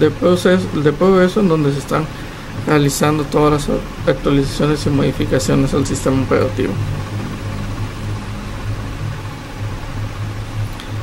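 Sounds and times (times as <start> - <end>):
even hiss: 0.0 - 11.0
low mechanical hum: 0.0 - 11.0.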